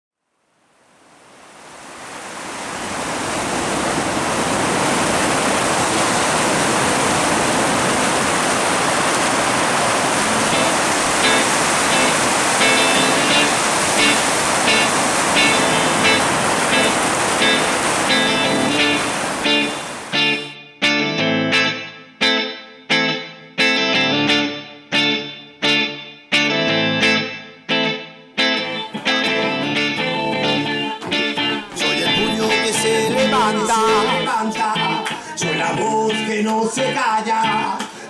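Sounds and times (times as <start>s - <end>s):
steady rushing noise: 1.0s - 20.5s
amplified music: 10.5s - 38.0s.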